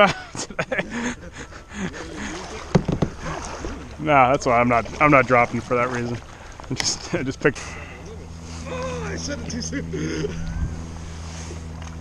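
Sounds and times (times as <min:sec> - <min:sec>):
person laughing: 0:00.0 - 0:02.6, 0:08.6 - 0:10.8
paddle splashing water: 0:01.8 - 0:09.7
knocks on plastic hull: 0:02.7 - 0:03.3.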